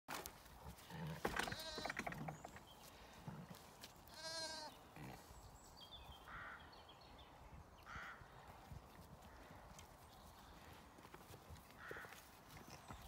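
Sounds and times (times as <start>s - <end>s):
lambs bleating: 1.0s - 2.0s, 4.1s - 5.2s.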